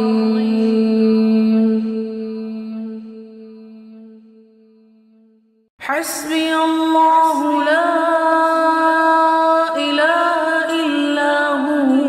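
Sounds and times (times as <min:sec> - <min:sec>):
chanting voice: 0:00.0 - 0:04.1.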